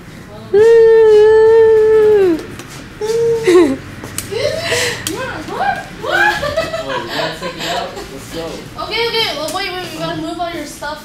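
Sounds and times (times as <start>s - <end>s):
person singing long high note: 0.6s - 2.4s.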